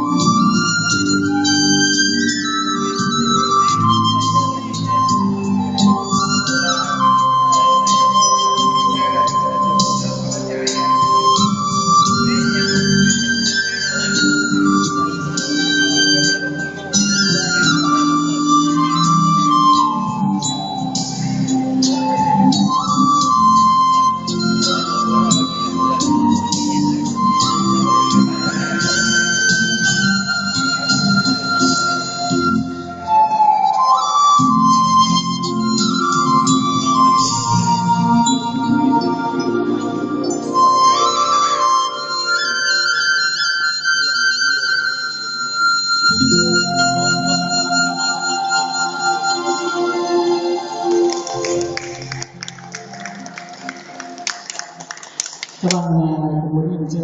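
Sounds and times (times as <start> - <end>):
bamboo flute melody: 0.0 - 55.3
backing track: 0.0 - 57.0
lower accompaniment: 0.0 - 57.0.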